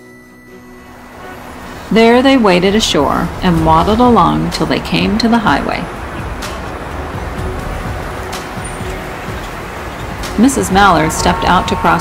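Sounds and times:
background music: 0.0s - 12.0s
passing traffic rumble: 0.6s - 12.0s.

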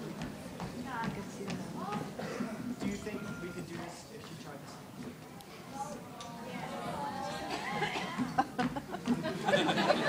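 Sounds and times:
heel footsteps on stage: 0.0s - 5.3s, 7.8s - 10.0s
audience murmuring: 0.0s - 10.0s
audience laughter: 7.4s - 10.0s.

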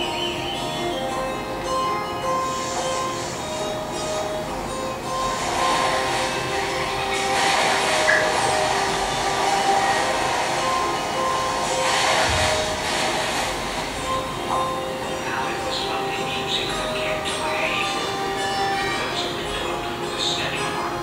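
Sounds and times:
rushing noise: 0.0s - 21.0s
sustained music notes: 0.0s - 21.0s.

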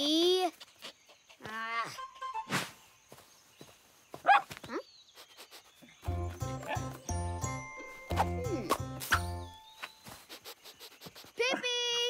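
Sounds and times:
light music with bouncing bass: 6.1s - 9.6s.

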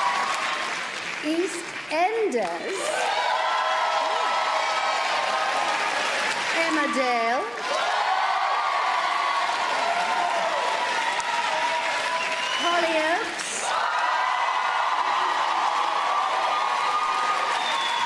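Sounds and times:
people cheering and whooping: 0.0s - 1.0s, 2.6s - 6.4s, 7.6s - 18.0s
audience applauding: 0.0s - 18.0s.

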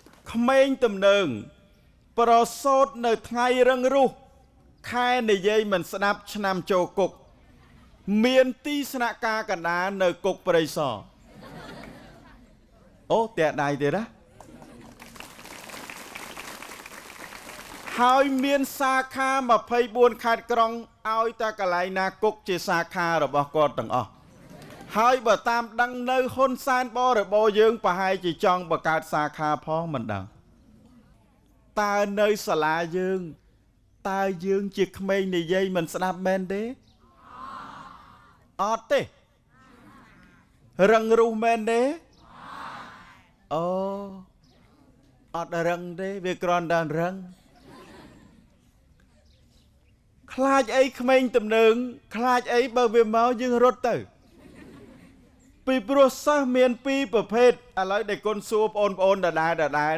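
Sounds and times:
man speaking: 0.3s - 1.6s, 2.2s - 7.2s, 8.0s - 11.1s, 13.0s - 14.2s, 17.9s - 24.2s, 24.9s - 30.4s, 31.8s - 33.4s, 34.0s - 36.8s, 38.6s - 39.2s, 40.8s - 42.1s, 45.3s - 47.4s, 50.3s - 54.1s, 55.6s - 59.9s
audience applause: 14.6s - 18.1s.

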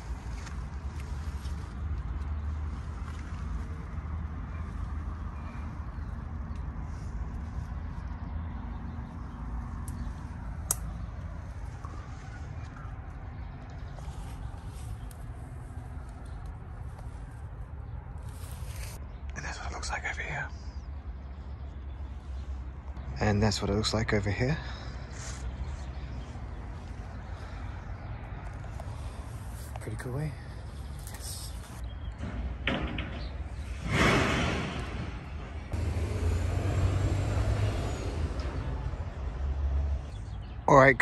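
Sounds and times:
leaves and branches rustling: 0.0s - 19.0s, 25.2s - 31.8s
man whispering: 19.3s - 20.9s, 29.5s - 31.8s.

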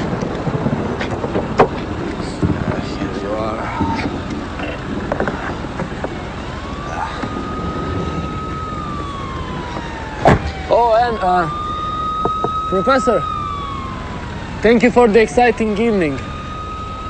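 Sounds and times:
siren wailing: 0.0s - 17.0s.

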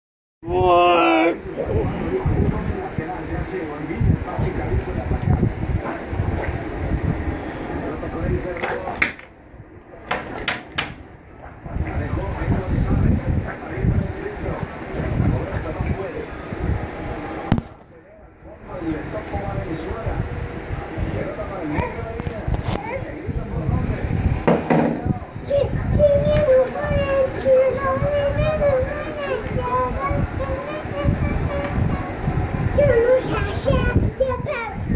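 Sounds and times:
indistinct voices: 0.4s - 2.8s
small child crying: 0.5s - 1.4s
young children's voices: 25.4s - 34.8s.

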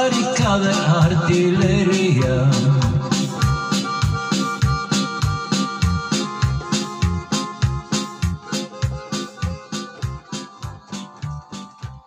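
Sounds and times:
drum and bass beat: 0.0s - 12.0s
electronic keyboard playing: 0.0s - 12.0s.

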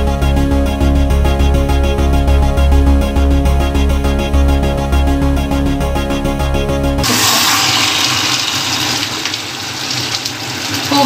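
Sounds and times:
food sizzling in a pan: 7.0s - 11.0s.

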